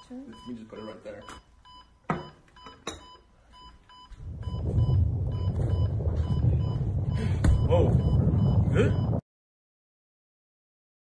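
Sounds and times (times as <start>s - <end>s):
loud low rumble: 4.2s - 9.2s
short electronic beeps: 7.5s - 9.2s.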